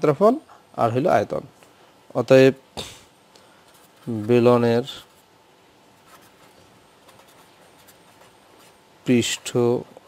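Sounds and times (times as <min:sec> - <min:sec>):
pen scratching on paper: 0:06.0 - 0:08.8.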